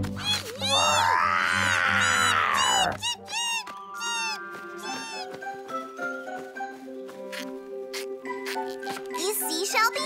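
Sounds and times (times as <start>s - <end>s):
background music: 0.0s - 10.0s
cartoon cries: 0.2s - 5.3s.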